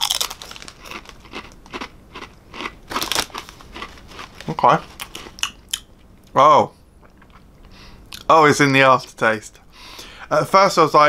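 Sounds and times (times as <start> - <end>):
crisp crunching: 0.0 - 5.6.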